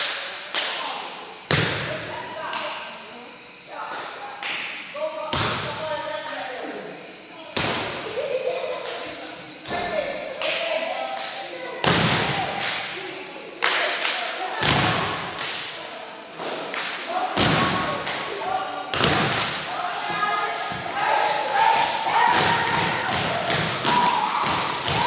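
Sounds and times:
rhythmic clapping: 0.0s - 1.1s, 2.4s - 3.1s, 3.9s - 6.6s, 8.7s - 25.0s
voices calling out: 0.0s - 25.0s.

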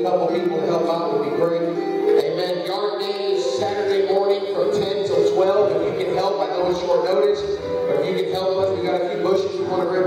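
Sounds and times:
held instrumental tones: 0.0s - 10.0s
man's voice: 0.0s - 10.0s.

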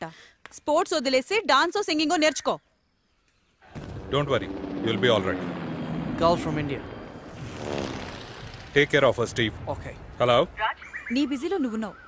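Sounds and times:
people speaking dialogue: 0.0s - 2.6s, 4.0s - 7.2s, 8.6s - 12.0s.

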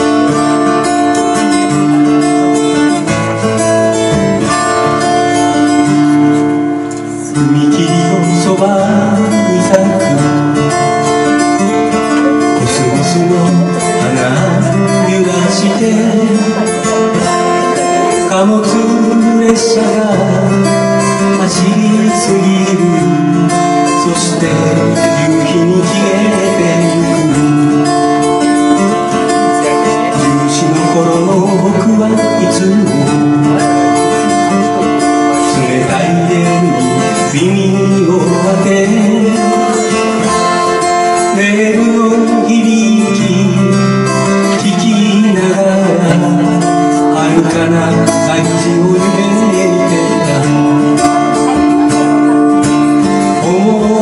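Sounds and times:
acoustic guitar strumming: 0.0s - 54.0s
person singing folk melody: 0.0s - 54.0s.

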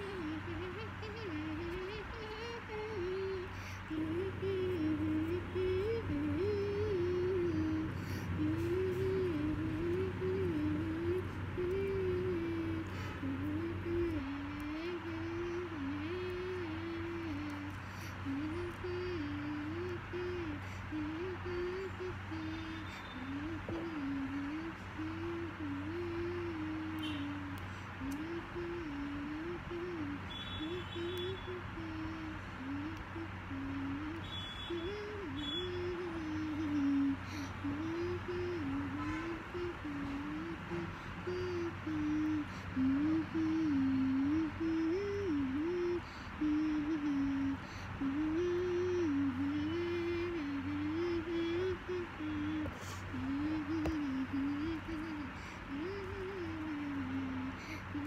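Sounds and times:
low background hum: 0.0s - 58.0s
slow lullaby-like tune: 0.0s - 58.0s.

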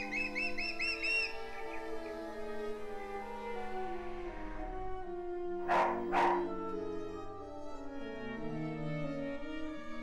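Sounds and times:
bird chirping: 0.0s - 2.1s.

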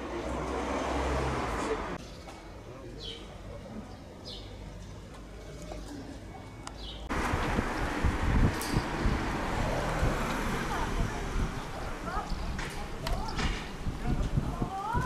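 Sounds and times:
street rushing noise: 0.0s - 2.7s, 7.0s - 15.0s
people's voices: 9.2s - 15.0s.

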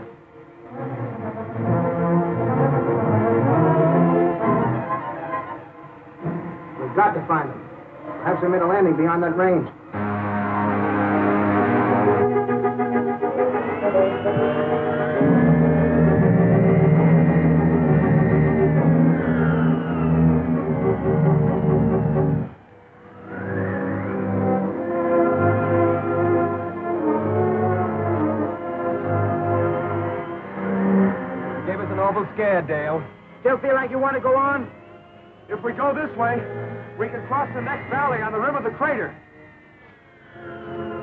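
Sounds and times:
orchestral music sustained chords: 0.0s - 41.0s.

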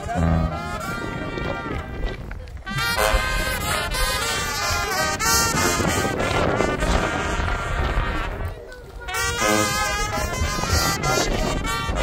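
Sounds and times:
brass band playing: 0.0s - 12.0s
people talking: 0.0s - 12.0s.

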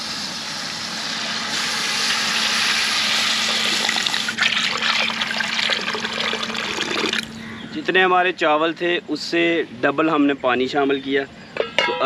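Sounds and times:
water pouring into liquid: 1.5s - 7.3s.

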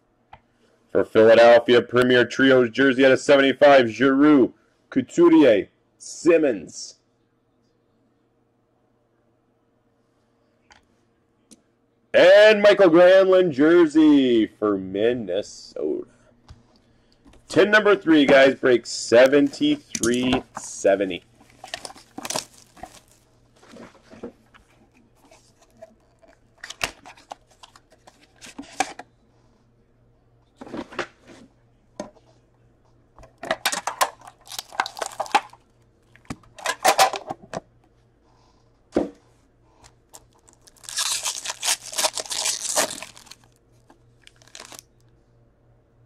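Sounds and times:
shrink-wrap crinkling: 19.4s - 23.9s, 33.6s - 36.1s, 40.1s - 44.9s
foil pack ripping: 21.6s - 23.3s, 34.2s - 35.6s, 40.2s - 43.6s, 44.2s - 44.8s.

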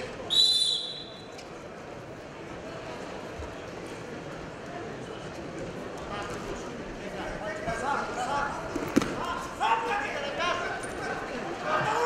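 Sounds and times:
people shouting in a hall: 9.2s - 12.0s.

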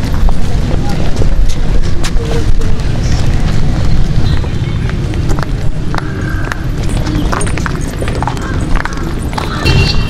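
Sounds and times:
footsteps on brick path: 0.0s - 10.0s
steady low rumble: 0.0s - 10.0s.

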